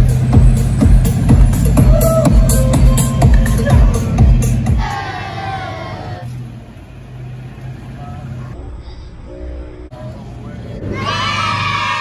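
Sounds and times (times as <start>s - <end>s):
truck engine running: 0.0s - 10.9s.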